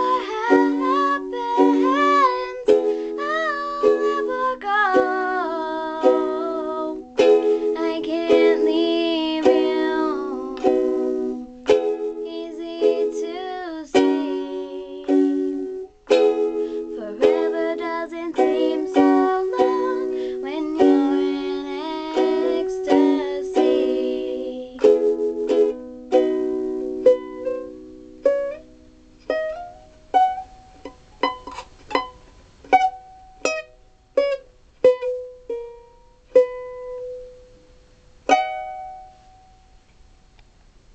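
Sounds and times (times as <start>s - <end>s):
girl singing: 0.0s - 26.3s
plucked ukulele notes: 0.0s - 40.2s
ukulele strumming: 0.0s - 40.4s.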